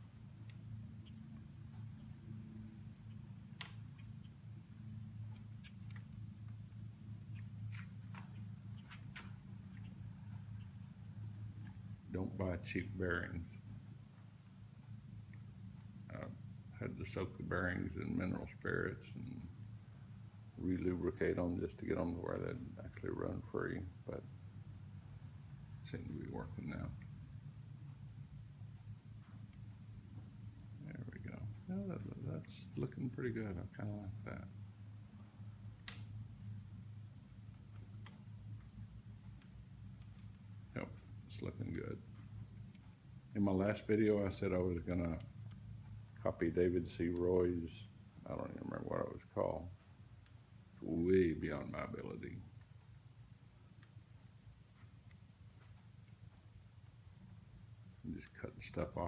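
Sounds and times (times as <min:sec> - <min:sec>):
faint low hum: 0:00.0 - 0:59.0
faint light ticks: 0:00.4 - 0:04.4, 0:05.2 - 0:06.7, 0:07.3 - 0:11.9, 0:13.6 - 0:16.4, 0:35.7 - 0:36.2, 0:51.8 - 0:57.2.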